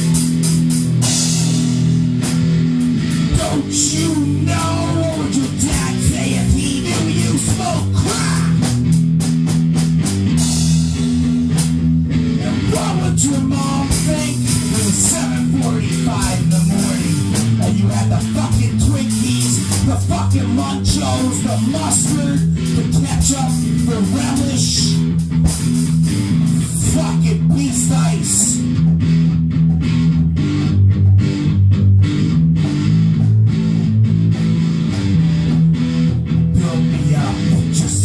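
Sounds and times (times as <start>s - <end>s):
distorted electric guitar chords: 0.0s - 38.0s
drum kit: 0.0s - 38.0s
person singing: 3.3s - 8.7s, 12.4s - 25.1s, 26.6s - 28.7s, 36.5s - 38.0s.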